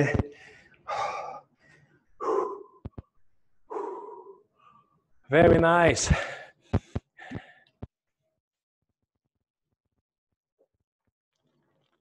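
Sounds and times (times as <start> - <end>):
man breathing heavily: 0.2 - 2.9, 3.7 - 4.9, 6.1 - 7.8.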